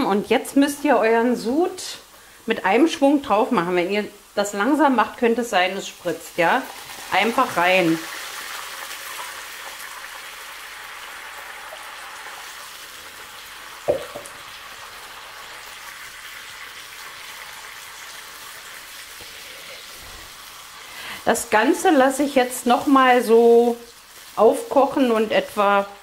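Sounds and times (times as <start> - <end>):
food sizzling in frying pan: 0.0 - 26.0
liquid poured into hot pan: 6.6 - 21.2
single knock: 13.9 - 14.3.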